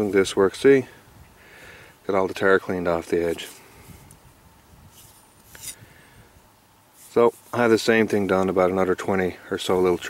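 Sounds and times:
low background noise: 0:00.0 - 0:10.0
soft rustle: 0:02.9 - 0:06.2, 0:06.9 - 0:08.5.

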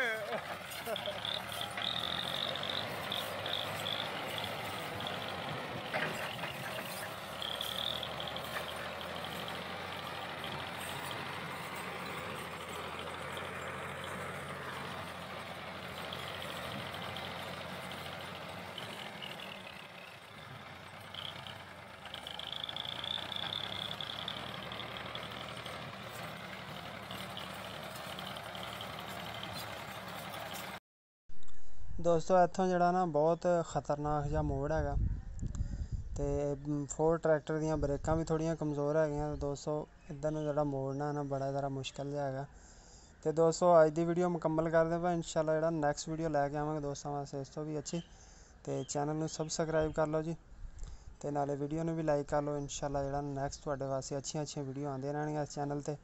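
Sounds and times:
tractor engine running: 0:00.0 - 0:30.8.

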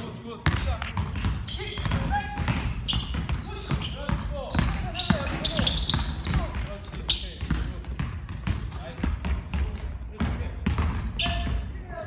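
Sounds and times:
basketball bouncing on hardwood: 0:00.4 - 0:11.6
shoes squeaking on court: 0:00.4 - 0:11.7.

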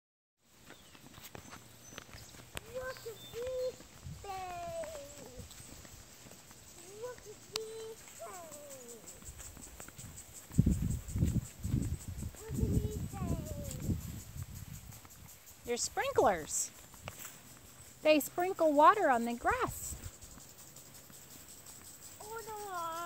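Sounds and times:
toddler babbling: 0:02.6 - 0:05.5, 0:06.8 - 0:09.2, 0:12.4 - 0:13.9, 0:22.2 - 0:23.0.

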